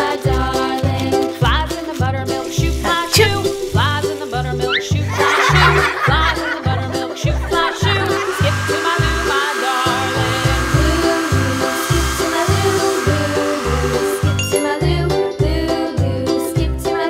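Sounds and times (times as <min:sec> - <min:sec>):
background music with steady beat: 0:00.0 - 0:17.0
hair dryer blowing: 0:02.4 - 0:14.8.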